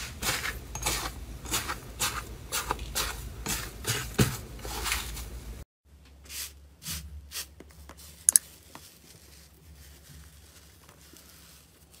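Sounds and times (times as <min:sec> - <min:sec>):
crinkly slime crackles: 0:08.0 - 0:12.0.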